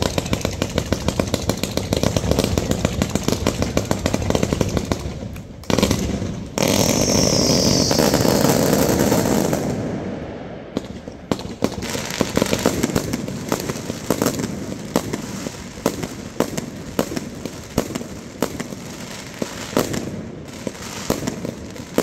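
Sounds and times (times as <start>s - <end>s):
fireworks crackling and hissing: 0.0s - 22.0s
fireworks launching: 0.0s - 22.0s.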